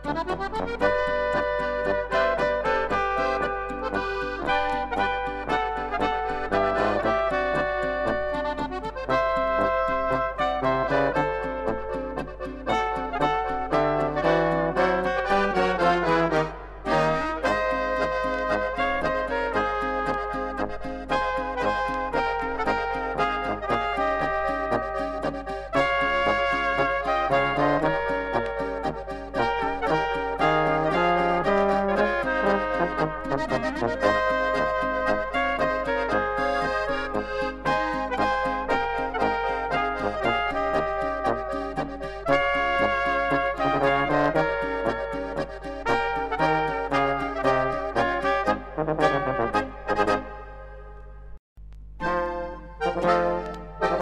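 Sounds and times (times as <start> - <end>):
polka with brass and accordion: 0.0 - 51.2, 52.0 - 54.0.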